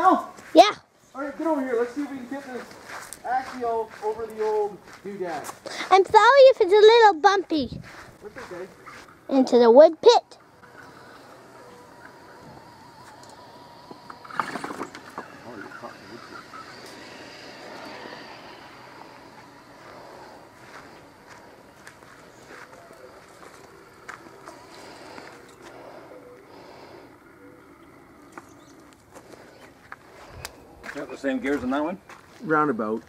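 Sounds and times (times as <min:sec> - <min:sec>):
small electric motor whirring: 0:10.3 - 0:31.4
faint voices murmuring: 0:15.2 - 0:32.1.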